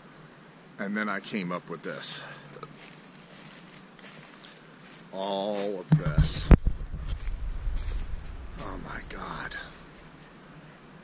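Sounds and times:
faint steady hiss: 0.0s - 11.0s
soft ticks and rustles: 2.5s - 8.3s.

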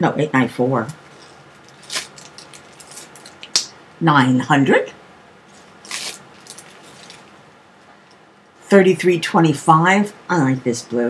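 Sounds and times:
plastic bags crinkling: 1.0s - 3.6s, 5.5s - 7.4s
small beads rattling in bags: 1.1s - 3.5s, 5.6s - 7.3s.

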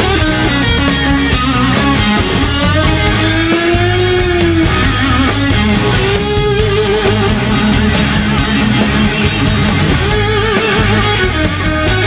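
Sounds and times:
bass guitar: 0.0s - 12.0s
drums: 0.0s - 12.0s
lead electric guitar: 0.0s - 12.0s.

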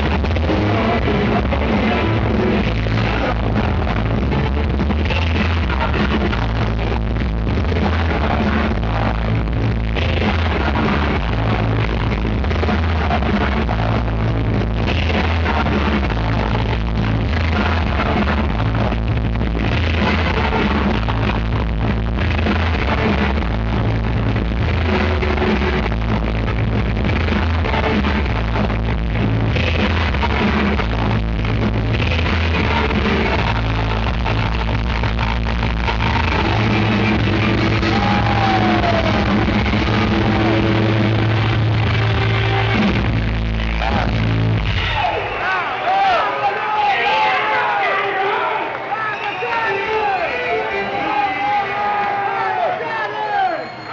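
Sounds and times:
heavy bass line: 0.0s - 46.0s
electric guitars: 0.0s - 46.3s.

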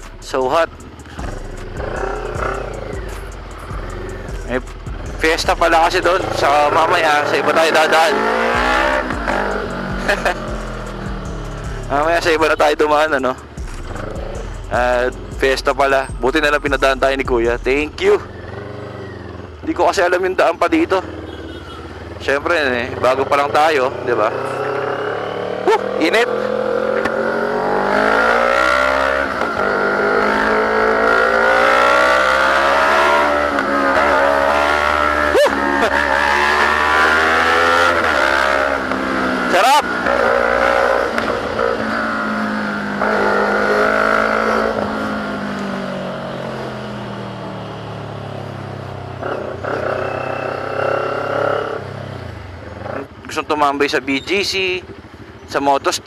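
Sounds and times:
motorcycle engine in traffic: 0.0s - 56.0s.

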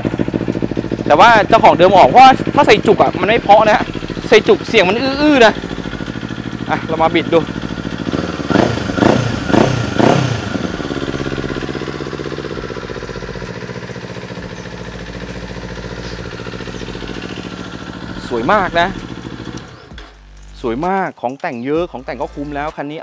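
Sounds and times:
motorcycle engine revving and idling: 0.0s - 23.0s.

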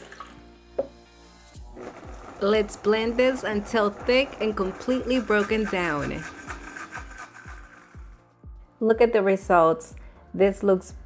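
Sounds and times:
liquid pouring into blender jar: 0.0s - 0.4s, 1.7s - 2.4s
soft background music: 0.0s - 11.0s.

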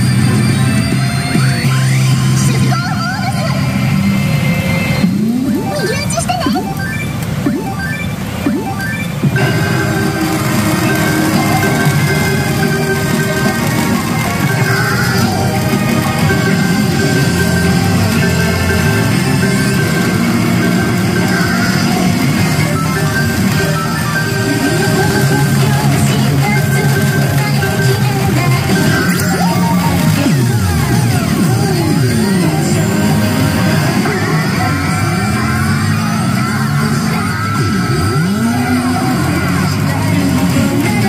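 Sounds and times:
pachinko machine music and effects: 0.0s - 41.0s
pachinko parlor din: 0.0s - 41.0s.

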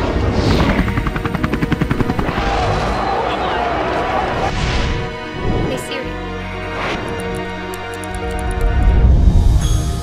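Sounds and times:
helicopter rotor chop: 0.0s - 2.8s
background music: 0.0s - 10.0s.

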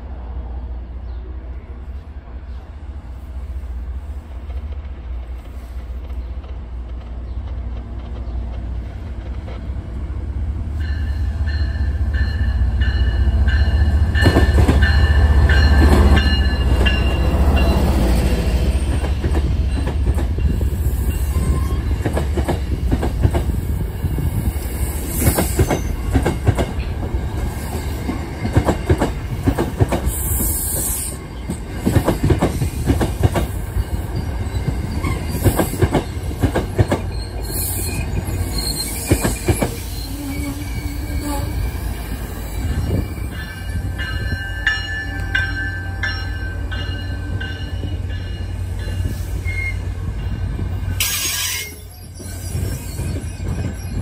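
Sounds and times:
train wheels clicking over rail joints: 10.8s - 18.1s, 18.7s - 24.4s, 25.1s - 40.0s
high wheel squeals: 33.7s - 47.2s, 50.9s - 54.0s.

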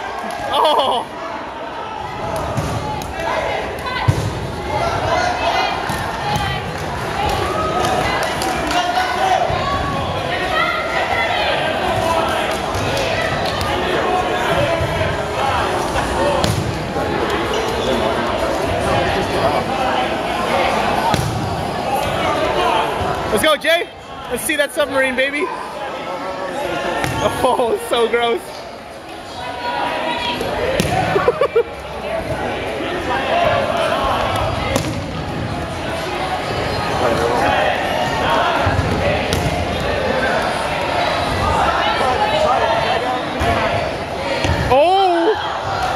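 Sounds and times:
chatter of people in gym: 0.0s - 45.9s
people shouting and talking: 0.0s - 45.9s.

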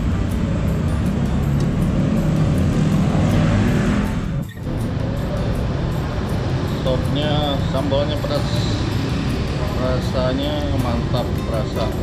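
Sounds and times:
low rumble of road traffic: 0.0s - 12.0s
vehicle passing: 0.0s - 12.0s.

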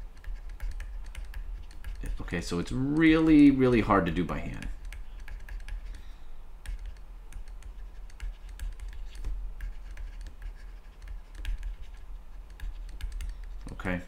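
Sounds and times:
low steady hum: 0.0s - 14.0s
stylus tapping on tablet screen: 0.2s - 2.2s, 4.5s - 13.6s.

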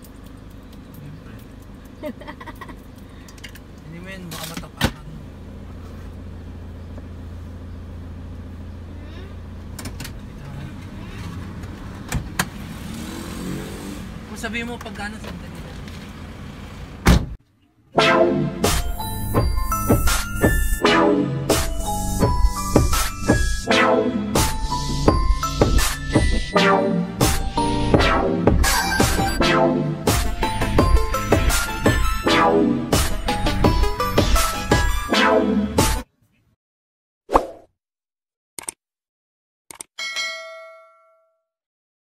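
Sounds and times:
street background noise: 0.0s - 17.9s
van door slamming shut: 17.0s - 17.4s
background music: 18.0s - 36.0s.

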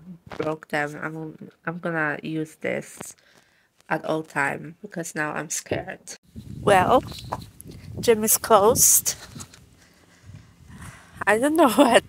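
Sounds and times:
wind rumbling on microphone: 5.7s - 12.0s.

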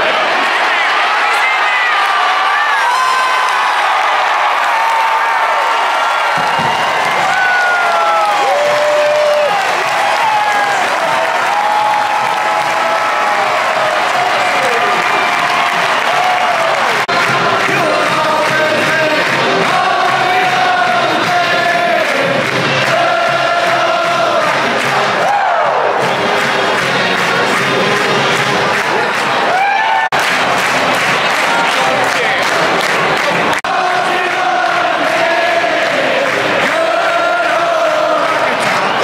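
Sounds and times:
stadium crowd cheering: 0.0s - 39.0s
music: 8.4s - 39.0s.

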